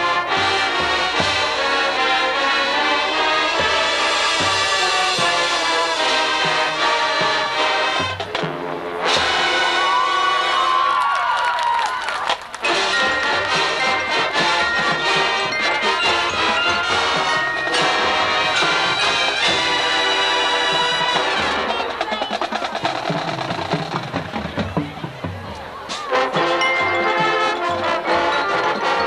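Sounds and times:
marching band playing: 0:00.0 - 0:29.0.

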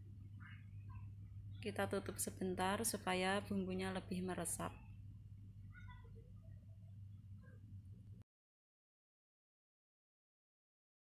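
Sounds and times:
steady low hum: 0:00.0 - 0:08.2.

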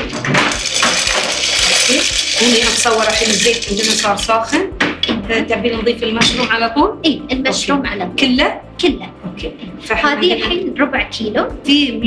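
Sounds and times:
pasta pouring into metal pot: 0:00.0 - 0:04.6.

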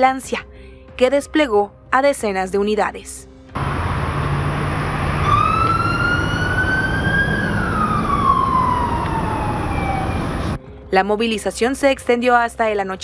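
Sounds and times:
rumble of vehicle engines: 0:03.5 - 0:10.6
police siren wailing: 0:04.6 - 0:10.6.

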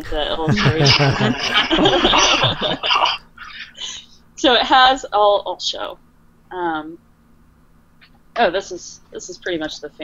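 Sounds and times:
woman laughing breathily: 0:00.5 - 0:04.1
woman breathing: 0:03.5 - 0:04.2.

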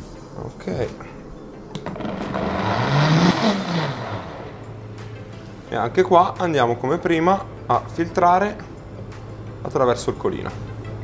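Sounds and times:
blender motor running: 0:01.9 - 0:04.6.

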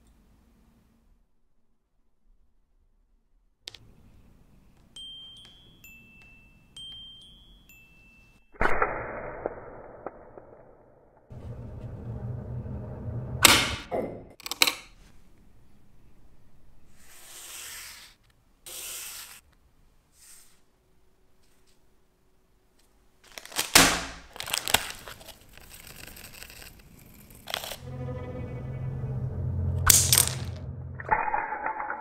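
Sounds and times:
chime-like notes: 0:05.0 - 0:08.4
loud hit: 0:11.3 - 0:14.2, 0:28.0 - 0:31.7.

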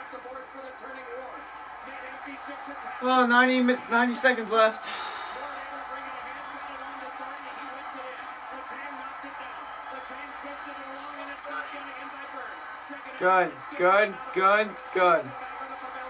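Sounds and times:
arena crowd noise: 0:00.0 - 0:16.0
commentator speaking through tv speaker: 0:00.0 - 0:16.0.

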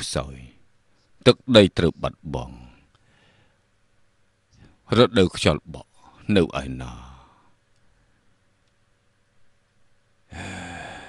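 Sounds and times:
person sighing: 0:10.3 - 0:11.0.

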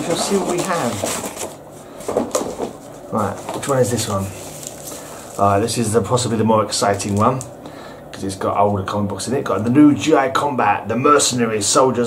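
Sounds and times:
package being opened: 0:03.4 - 0:05.4, 0:06.8 - 0:07.5.

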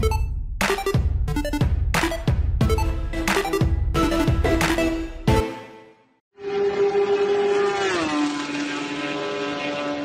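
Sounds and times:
race car engine passing: 0:06.4 - 0:10.0.

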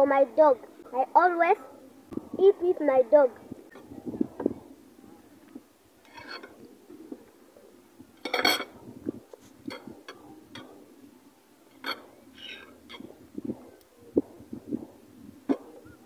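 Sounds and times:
dishes clattering: 0:08.2 - 0:08.8.

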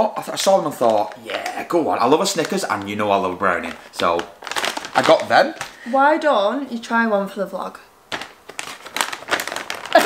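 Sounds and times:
plastic snack bag crinkling: 0:00.3 - 0:05.9, 0:08.1 - 0:10.0.

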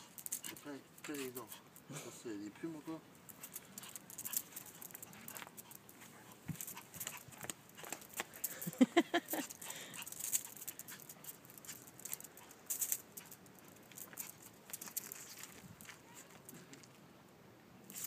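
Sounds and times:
clicks and scuffles on paving: 0:00.1 - 0:01.5, 0:03.2 - 0:17.0
small dog yipping: 0:15.8 - 0:16.5.

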